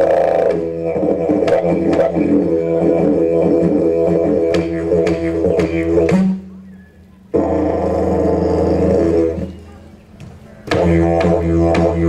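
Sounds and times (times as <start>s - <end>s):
didgeridoo drone: 0.0s - 9.7s, 10.6s - 12.0s.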